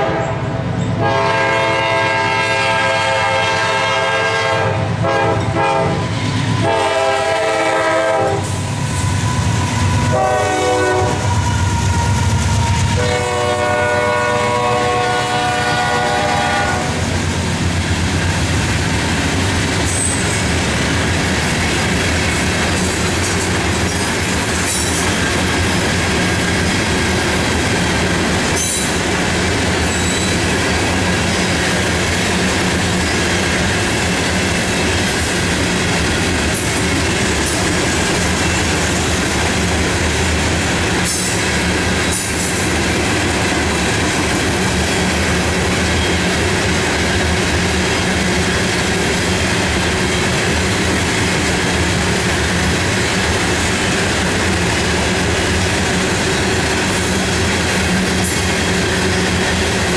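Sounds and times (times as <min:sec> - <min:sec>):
locomotive horn blasts: 0:00.0 - 0:09.1, 0:10.0 - 0:11.6, 0:12.7 - 0:17.0
high wheel squeals: 0:08.6 - 0:10.2, 0:19.9 - 0:21.8, 0:29.8 - 0:30.5
train wheel clatter: 0:15.7 - 0:59.9.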